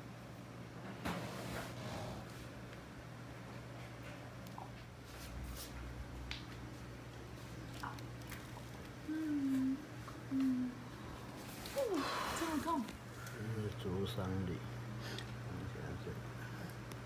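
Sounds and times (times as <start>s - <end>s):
steady low hum: 0.0s - 17.0s
person humming: 9.0s - 11.0s.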